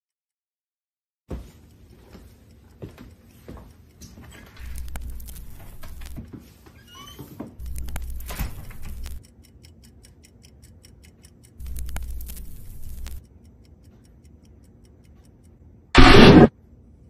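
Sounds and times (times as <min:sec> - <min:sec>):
rapid regular ticking: 0:04.6 - 0:06.2, 0:07.6 - 0:16.5
loud burst of noise: 0:16.0 - 0:16.5.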